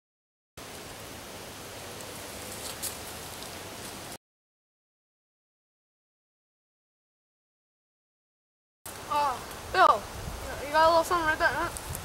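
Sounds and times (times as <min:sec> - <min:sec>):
outdoor background hiss: 0:00.6 - 0:04.2, 0:08.9 - 0:12.0.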